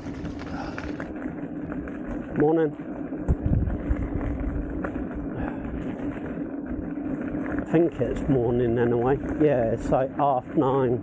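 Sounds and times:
tyre rumble on dirt: 0.0 - 9.7
electric motor whine: 0.0 - 11.0
low thumps from bumps: 1.7 - 10.1
wind on microphone: 3.1 - 10.7.

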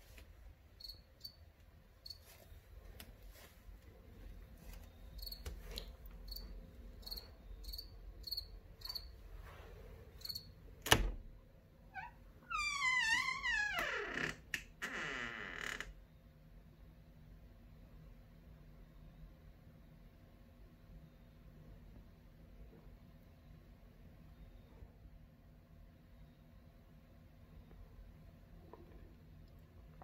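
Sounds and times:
cricket chirping: 0.8 - 2.3, 4.9 - 9.2, 10.1 - 10.6.

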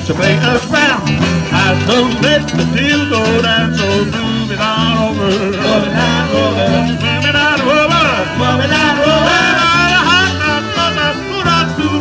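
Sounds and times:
accordion: 0.0 - 12.0
drums: 0.0 - 12.0
live band playing upbeat song: 0.0 - 12.0
saxophone: 5.4 - 12.0.

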